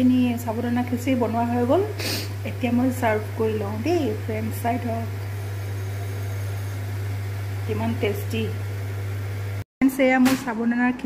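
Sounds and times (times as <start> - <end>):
steady low hum: 0.0 - 9.6.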